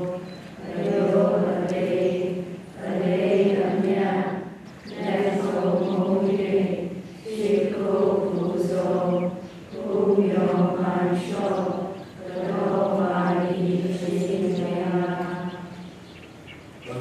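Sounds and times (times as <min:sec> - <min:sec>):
women chanting in unison: 0:00.0 - 0:15.9.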